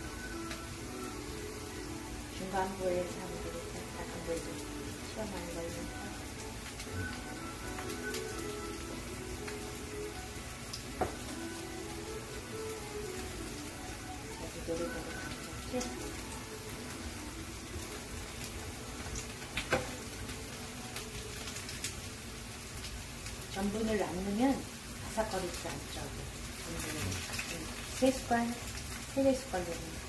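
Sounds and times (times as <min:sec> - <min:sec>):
pancakes sizzling in oil: 0:00.0 - 0:30.0.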